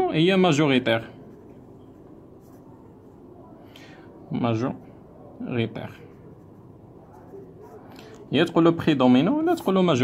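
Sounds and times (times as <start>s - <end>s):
pen scratching on paper: 6.0s - 7.9s.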